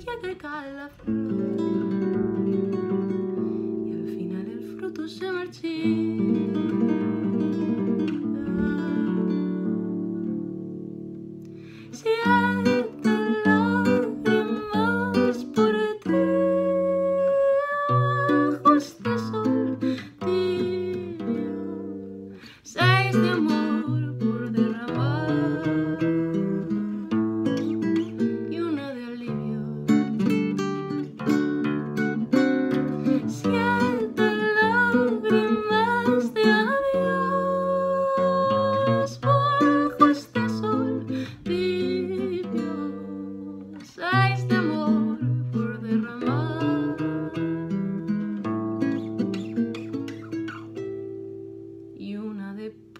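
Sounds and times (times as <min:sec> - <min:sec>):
woman singing: 0:00.0 - 0:10.1, 0:11.8 - 0:31.4, 0:32.2 - 0:50.2, 0:52.0 - 0:52.9
acoustic guitar: 0:00.0 - 0:52.9.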